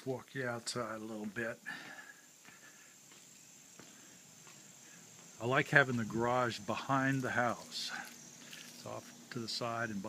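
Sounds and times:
crickets trilling: 0:00.0 - 0:10.0
soft footsteps: 0:00.3 - 0:09.4.

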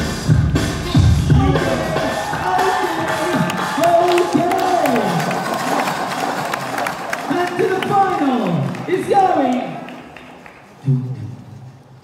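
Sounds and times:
crowd cheering and clapping: 0:01.6 - 0:10.8.

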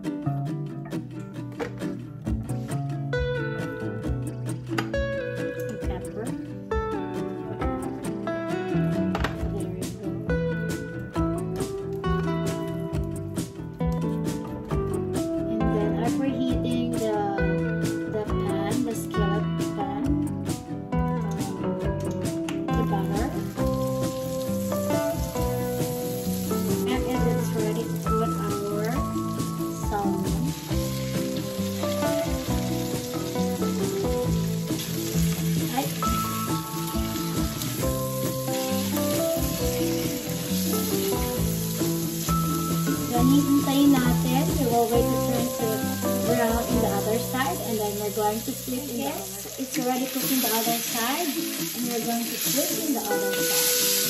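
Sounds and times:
background music: 0:00.0 - 0:54.0
fish sizzling in hot oil: 0:23.1 - 0:54.0.

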